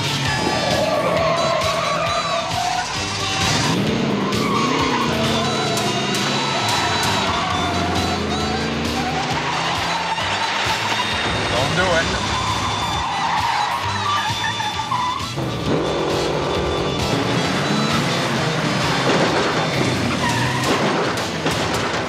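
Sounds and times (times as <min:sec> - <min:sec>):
chase music: 0:00.0 - 0:20.4
car engine revving: 0:00.0 - 0:22.0
tyres squealing: 0:00.0 - 0:22.0.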